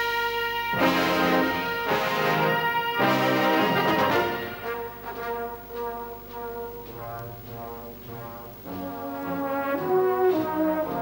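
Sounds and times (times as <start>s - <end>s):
brass band playing chords: 0.0s - 11.0s.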